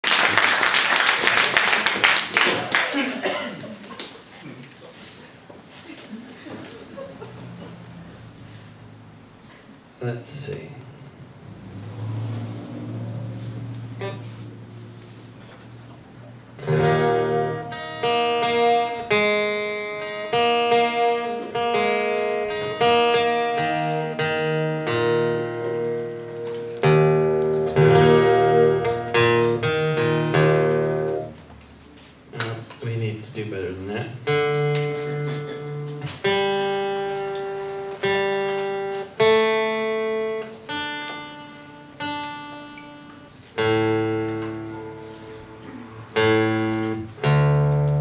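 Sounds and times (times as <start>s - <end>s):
man speaking: 10.0s - 10.9s, 32.4s - 34.2s
acoustic guitar string ringing: 13.9s - 31.4s, 34.2s - 48.0s.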